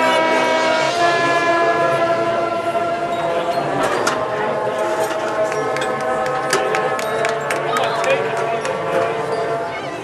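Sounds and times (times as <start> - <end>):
marching band sustained chords: 0.0 - 10.0.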